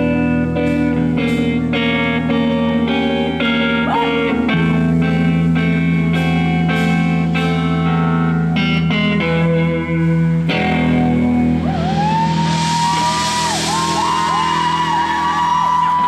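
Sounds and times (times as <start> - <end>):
lead electric guitar bending note: 0.0 - 16.0
live rock band: 0.0 - 16.0
cymbal wash: 4.6 - 16.0.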